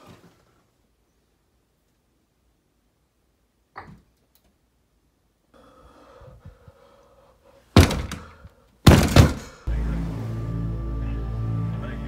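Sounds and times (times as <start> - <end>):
heavy thuds: 7.8 - 9.6.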